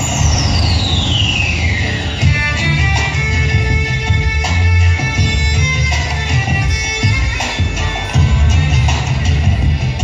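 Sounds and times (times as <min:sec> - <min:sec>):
falling tone sweep effect: 0:00.0 - 0:03.4
dense low rumble: 0:00.0 - 0:10.0
soundtrack music: 0:00.0 - 0:10.0.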